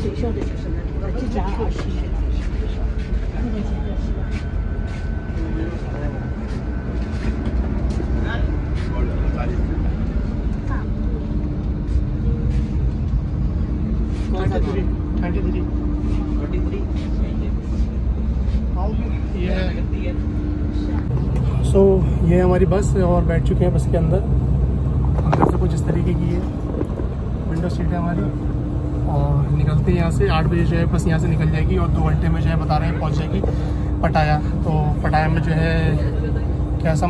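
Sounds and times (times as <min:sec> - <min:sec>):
bus engine idling hum: 0:00.0 - 0:37.0
indistinct chatter: 0:00.0 - 0:37.0.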